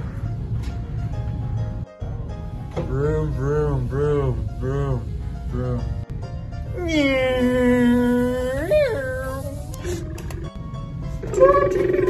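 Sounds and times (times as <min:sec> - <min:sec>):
background music: 0:00.0 - 0:12.0
person's drawn-out vocal cry: 0:06.7 - 0:09.6.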